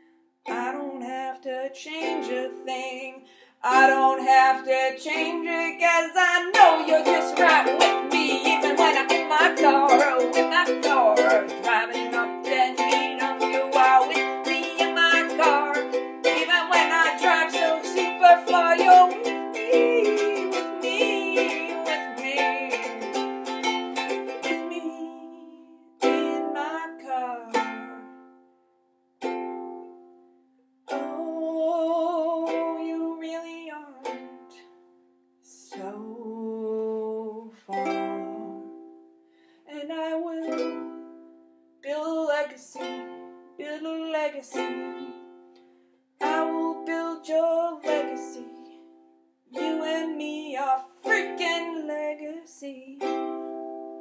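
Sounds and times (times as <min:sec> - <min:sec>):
ukulele chords ringing out: 0:00.4 - 0:03.1, 0:03.7 - 0:28.6, 0:29.2 - 0:34.8, 0:37.7 - 0:39.0, 0:40.0 - 0:41.6, 0:42.2 - 0:52.4, 0:53.0 - 0:54.0
ukulele strumming: 0:00.4 - 0:28.6, 0:29.2 - 0:34.8, 0:37.7 - 0:39.1, 0:39.8 - 0:54.0.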